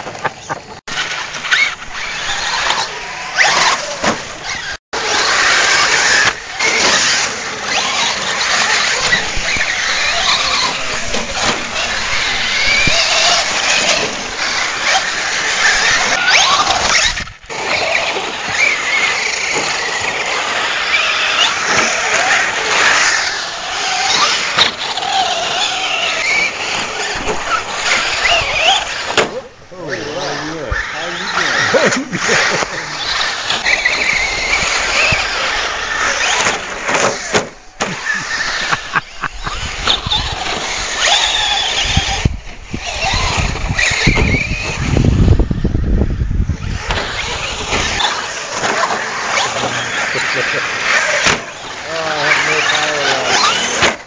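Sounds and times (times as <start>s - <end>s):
rc car motors whining: 0.1s - 54.0s.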